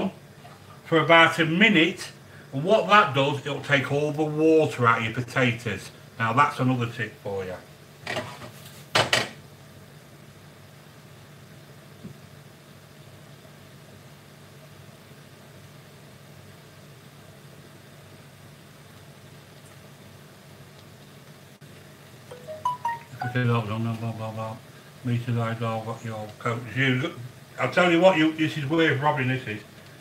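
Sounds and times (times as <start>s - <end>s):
gas burner hum: 23.4s - 30.0s.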